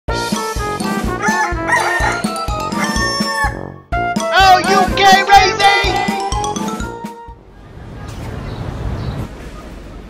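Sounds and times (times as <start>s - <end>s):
rooster crowing: 1.2s - 3.7s.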